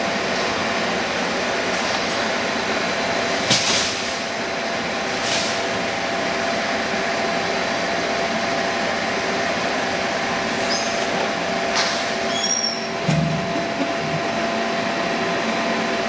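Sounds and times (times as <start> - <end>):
machinery running: 0.0 - 16.0.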